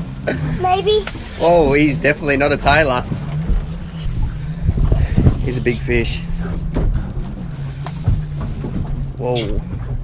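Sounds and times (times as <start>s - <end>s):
motorboat engine drone: 0.0s - 10.0s
fishing reel winding: 0.9s - 9.3s
wind noise: 1.2s - 10.0s.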